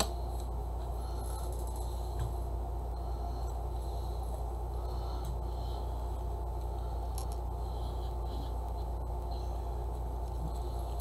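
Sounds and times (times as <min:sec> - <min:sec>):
low hum of room tone: 0:00.0 - 0:11.0.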